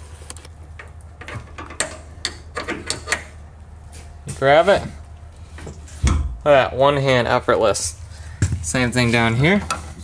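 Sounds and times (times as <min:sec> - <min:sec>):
steady low hum: 0:00.0 - 0:10.0
metal latches clicking and clacking: 0:00.8 - 0:03.4.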